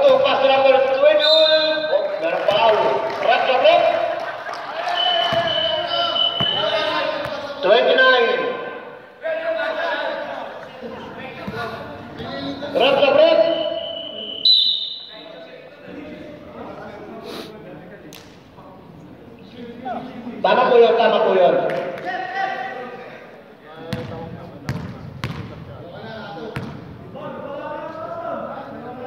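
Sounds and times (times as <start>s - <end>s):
basketball bouncing on court: 5.3s - 5.7s, 6.4s - 7.4s, 23.9s - 25.7s, 26.5s - 27.0s.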